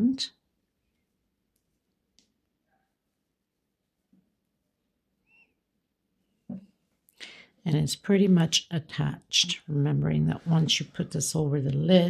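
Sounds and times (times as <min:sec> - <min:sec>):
faint high-pitched chirp: 0:05.2 - 0:05.6.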